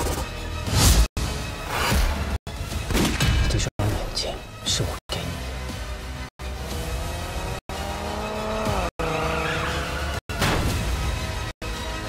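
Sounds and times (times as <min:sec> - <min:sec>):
car tyres squealing: 0:08.5 - 0:10.2.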